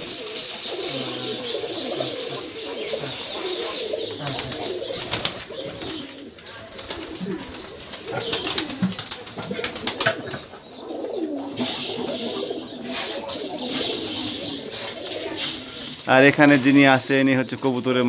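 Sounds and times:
pigeons cooing: 0.0s - 17.9s.

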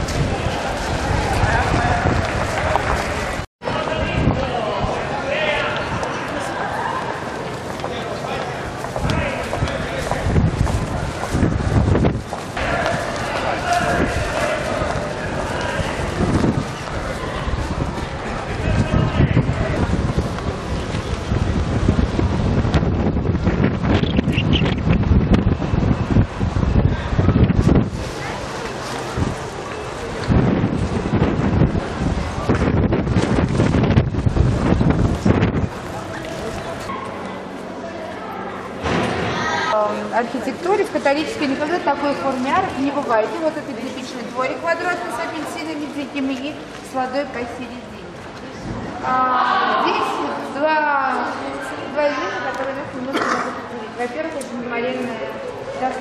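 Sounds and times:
indistinct voices: 0.0s - 21.8s, 26.1s - 56.0s
wind buffeting microphone: 0.0s - 37.6s
steady low rumble: 7.1s - 37.8s.

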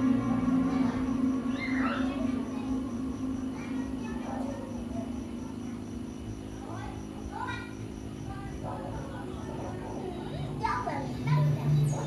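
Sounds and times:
music: 0.0s - 6.4s
children's voices: 0.0s - 12.0s
steady low hum: 0.0s - 12.0s.

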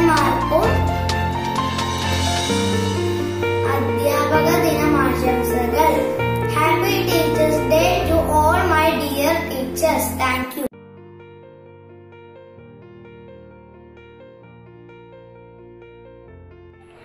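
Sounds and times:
instrumental backing track bass notes: 0.0s - 10.4s.

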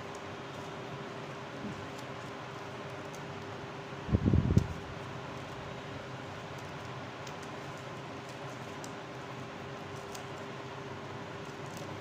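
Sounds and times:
steady background hum: 0.0s - 12.0s
paper strips rustling: 6.3s - 10.6s.

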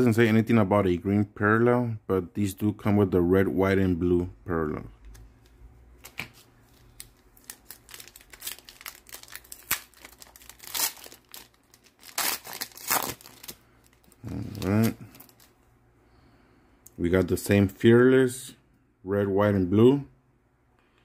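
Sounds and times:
foil wrapper tearing and crinkling: 6.7s - 15.5s.

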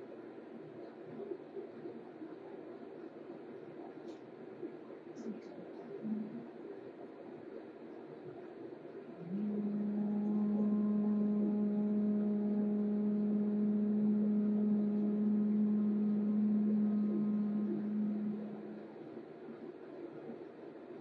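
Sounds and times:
low steady hum: 0.0s - 21.0s
woman chanting held tone: 9.2s - 19.0s.

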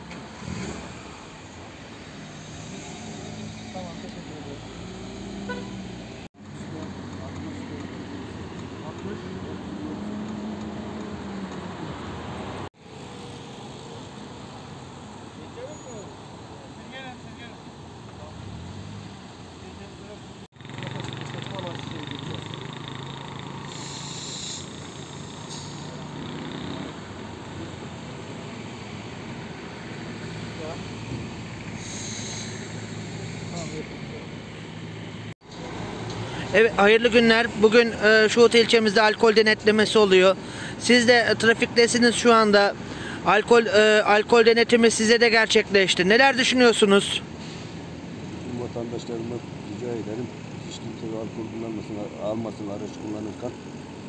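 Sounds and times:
car engines idling: 19.0s - 54.0s.

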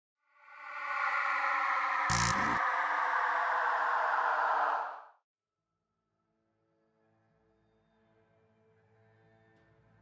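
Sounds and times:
synthesized hum falling in pitch: 2.0s - 2.6s.

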